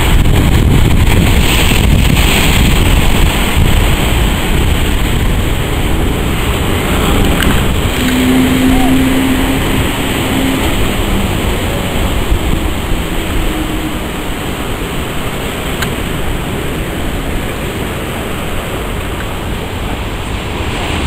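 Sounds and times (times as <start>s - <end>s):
breaking surf: 0.0s - 21.0s
outboard engine running: 0.0s - 21.0s
wind buffeting microphone: 0.0s - 21.0s
low droning note: 5.6s - 17.3s.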